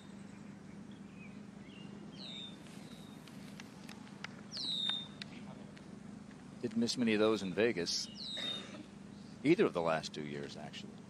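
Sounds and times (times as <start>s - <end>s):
bird chirps: 0.0s - 3.3s, 4.4s - 5.3s, 8.0s - 9.4s
faint steady background hum: 0.0s - 11.0s
bird whistle call: 4.5s - 5.2s, 8.1s - 8.7s.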